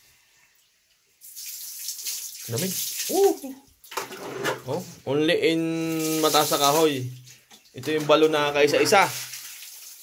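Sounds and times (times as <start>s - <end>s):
water splashing and sloshing: 0.5s - 5.1s, 5.8s - 10.0s.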